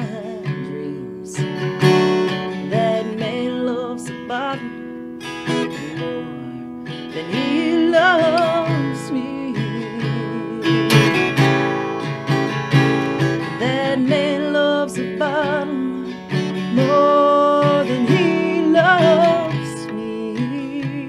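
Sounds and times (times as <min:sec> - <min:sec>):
woman singing with vibrato: 0:00.0 - 0:01.7, 0:02.3 - 0:11.5, 0:13.3 - 0:21.0
acoustic guitar slow blues: 0:00.0 - 0:21.0.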